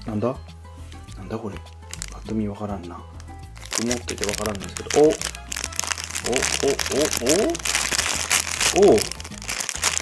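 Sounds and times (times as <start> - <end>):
plastic bag crinkling: 1.8 - 2.2, 3.5 - 10.0.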